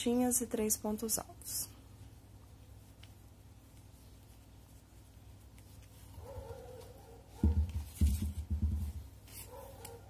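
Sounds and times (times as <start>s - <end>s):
dull handling bumps: 7.3s - 9.2s.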